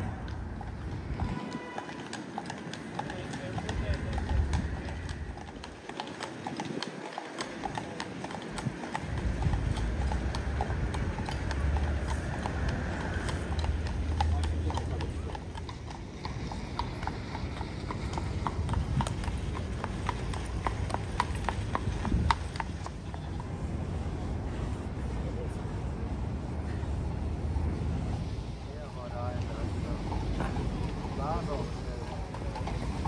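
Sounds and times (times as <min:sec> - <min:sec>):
horse hooves on paved road: 0:00.0 - 0:33.0.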